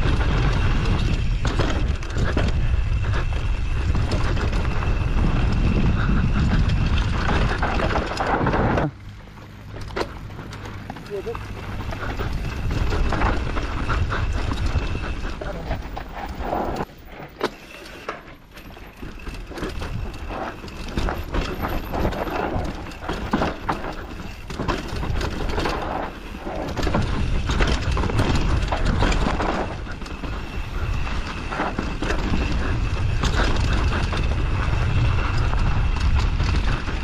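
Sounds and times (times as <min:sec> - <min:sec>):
wind rumbling on microphone: 0:00.0 - 0:17.3, 0:18.6 - 0:37.0
bike rolling over dirt: 0:00.0 - 0:37.0
chain and suspension clatter: 0:00.0 - 0:37.0.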